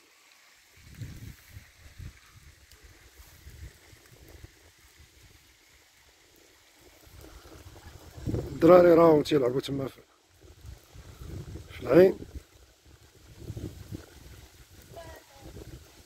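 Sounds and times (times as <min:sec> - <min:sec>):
faint steady hiss: 0:00.0 - 0:16.0
wind buffeting microphone: 0:00.8 - 0:05.6, 0:06.8 - 0:09.3, 0:10.3 - 0:16.0.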